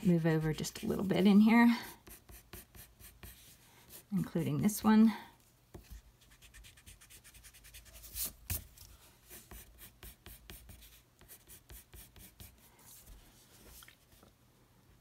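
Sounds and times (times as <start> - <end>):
pencil scratching on paper: 0.4 - 4.1, 5.7 - 8.6, 9.3 - 13.0.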